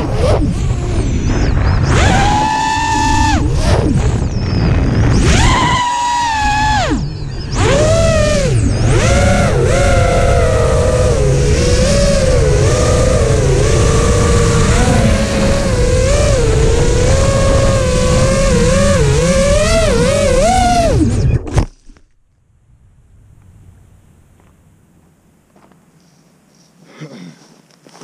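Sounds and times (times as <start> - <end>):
quadcopter motors whining: 0.0 - 21.4
wind rumble on microphone: 0.0 - 21.7.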